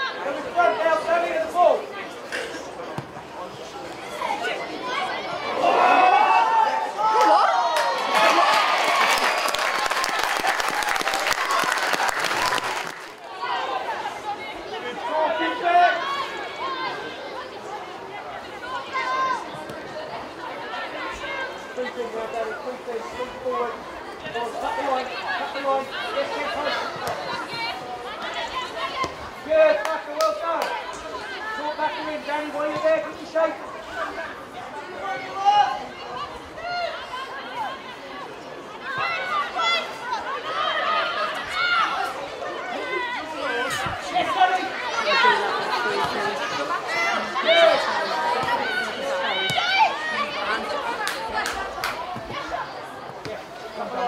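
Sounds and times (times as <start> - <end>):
players calling and shouting: 0.0 - 54.0.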